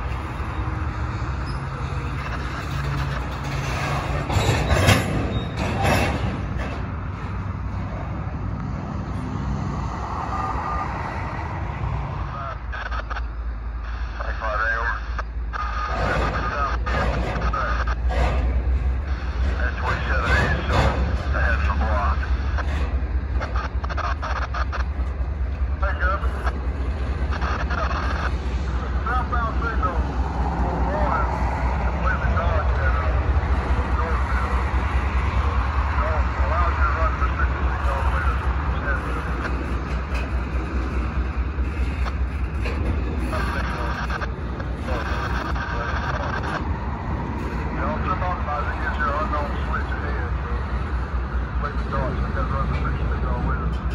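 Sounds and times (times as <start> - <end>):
freight train wheels rumbling: 0.0 - 53.9
wheel squeal: 1.3 - 1.9, 2.6 - 6.2.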